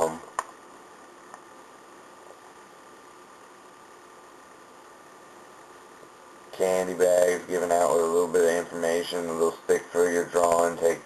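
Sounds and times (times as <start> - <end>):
faint room tone hiss: 0.0 - 11.0
light steady hum: 0.0 - 11.0.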